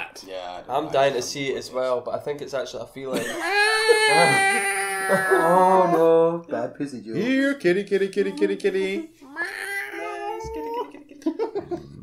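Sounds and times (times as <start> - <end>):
man imitating a cat: 8.0 - 10.5.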